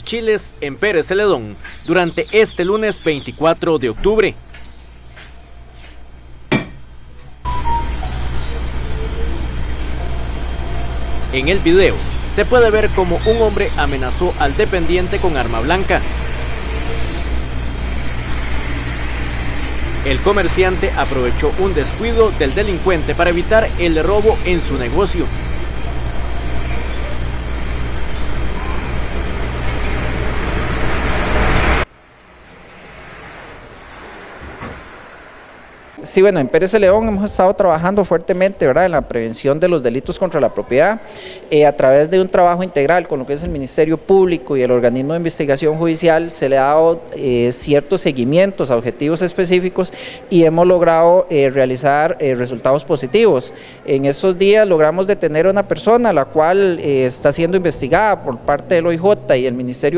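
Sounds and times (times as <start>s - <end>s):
steady low rumble and hiss: 5.6s - 59.9s
low hum: 7.0s - 36.0s
loud rough noise: 8.0s - 36.0s.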